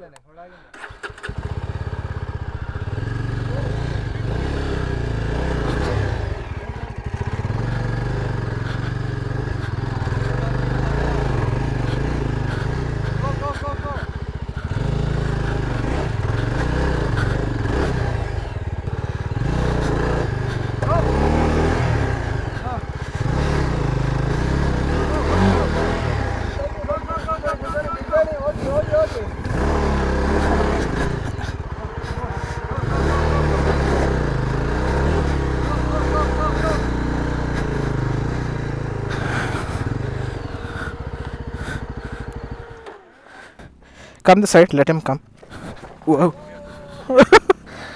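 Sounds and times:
motorcycle engine revving: 0.7 - 47.9
people talking: 3.5 - 4.2, 6.6 - 6.9, 9.7 - 11.4, 13.1 - 14.1, 20.8 - 21.2, 22.6 - 22.9, 24.9 - 25.8, 26.5 - 29.3, 30.3 - 34.1, 35.5 - 36.9, 44.3 - 45.2, 46.0 - 47.5.

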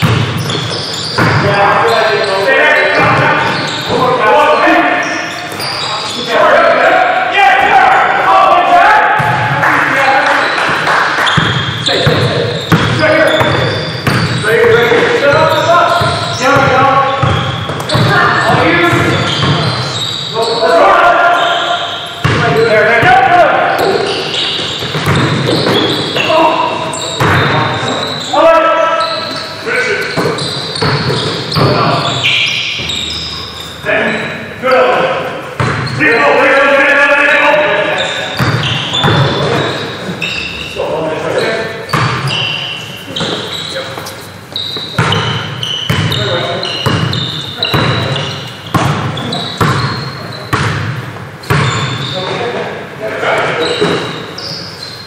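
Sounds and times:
basketball bouncing on gym floor: 0.0 - 1.5, 2.9 - 4.0, 9.2 - 9.6, 10.7 - 19.9, 22.2 - 26.3, 27.1 - 27.8, 30.1 - 32.2, 35.6 - 36.0, 38.4 - 39.8, 41.9 - 42.3, 44.7 - 52.1
voices echoing: 0.0 - 55.0.

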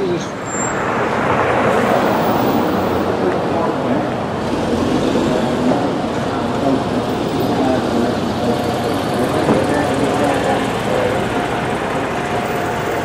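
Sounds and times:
bus driving past: 0.0 - 13.0
city street traffic: 0.0 - 13.0.

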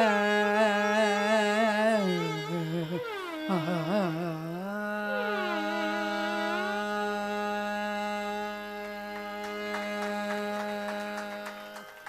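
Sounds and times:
violin accompaniment: 0.0 - 12.0.

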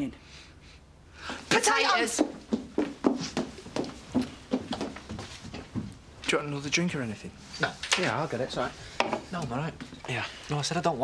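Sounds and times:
hurried footsteps: 1.5 - 6.0.

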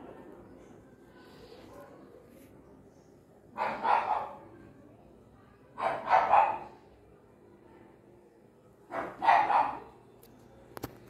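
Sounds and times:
dog barking: 3.5 - 4.6, 5.8 - 6.8, 8.9 - 10.0.

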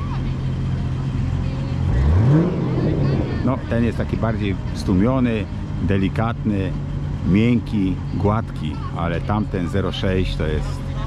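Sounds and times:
car engine low rumble: 0.0 - 11.0.

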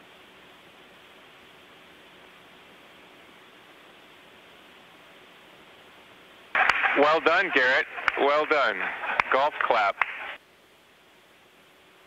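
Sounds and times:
radio static hiss: 0.0 - 12.0
man's voice: 7.0 - 10.0.

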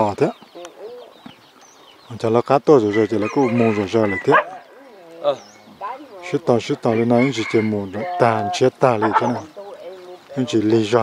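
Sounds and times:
chickens clucking: 0.0 - 11.0
man's voice: 2.1 - 4.5, 6.2 - 9.6, 10.3 - 11.0.

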